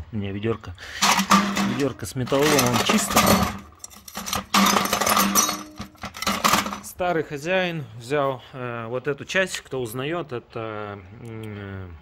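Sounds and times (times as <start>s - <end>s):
scrap metal clattering in a bucket: 1.0s - 6.9s.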